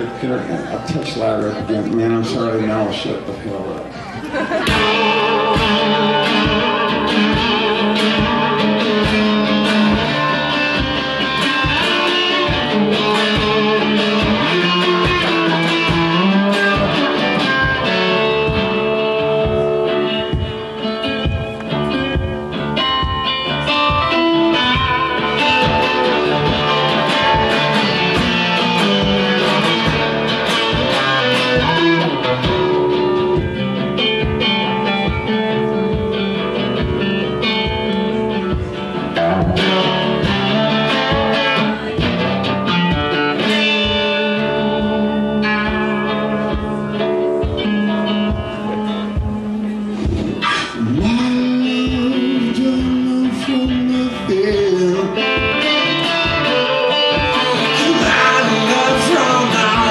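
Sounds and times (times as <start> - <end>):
resonator guitar picked and strummed: 0.0 - 59.9.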